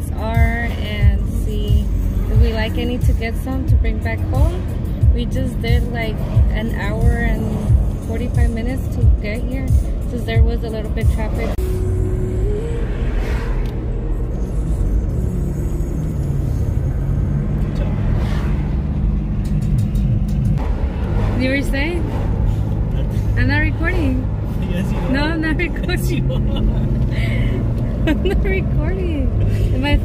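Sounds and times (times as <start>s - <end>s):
car road and engine rumble: 0.0s - 30.0s.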